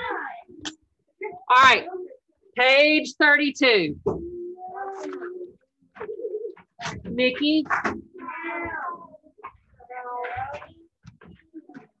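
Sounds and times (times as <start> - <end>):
cat meowing: 8.2 - 9.2.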